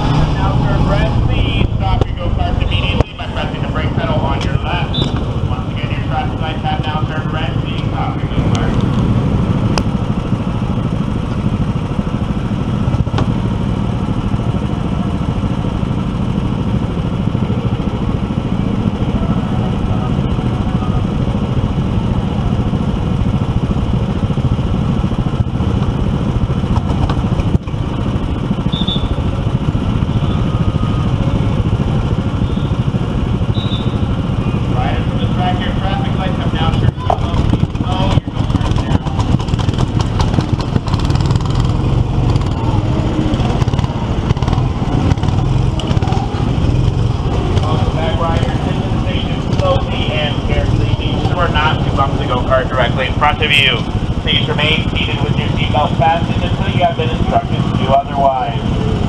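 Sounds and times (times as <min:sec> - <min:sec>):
go-kart engine running: 0:00.0 - 0:59.0.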